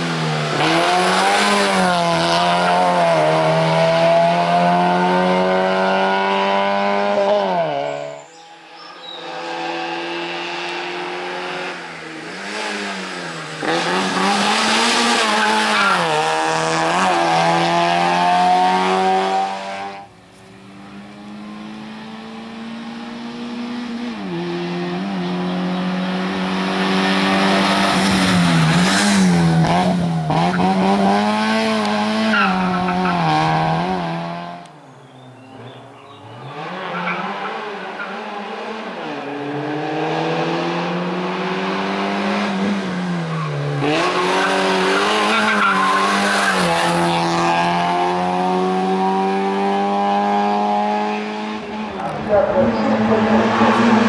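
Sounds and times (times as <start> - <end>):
race car engine revving: 0.0 - 8.4, 9.0 - 34.8, 35.5 - 54.0.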